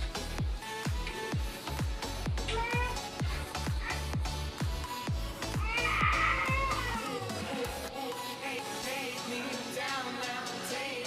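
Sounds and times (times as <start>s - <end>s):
kick drum beat: 0.0s - 7.0s.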